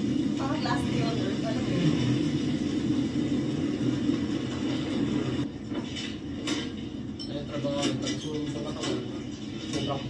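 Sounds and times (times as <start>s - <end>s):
steady low rumble: 0.0s - 7.2s.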